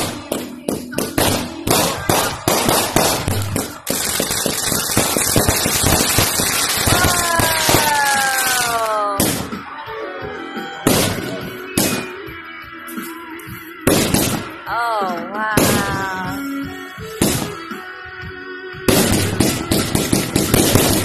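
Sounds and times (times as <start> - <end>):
firework bangs: 0.0 - 9.6, 10.8 - 12.2, 13.8 - 14.6, 17.1 - 17.8, 18.9 - 21.0
firework crackling: 0.0 - 9.6, 18.9 - 21.0
falling firework whistles: 2.1 - 9.6.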